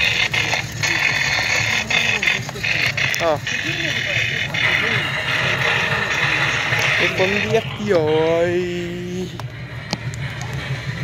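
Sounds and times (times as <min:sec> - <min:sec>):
harsh mechanical rattle: 0:00.0 - 0:11.0.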